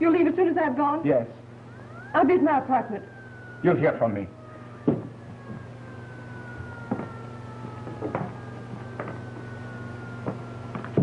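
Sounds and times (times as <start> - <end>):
distant siren wailing: 0.0 - 11.0
low hum: 0.0 - 11.0
thump: 4.8 - 5.7, 6.9 - 7.1.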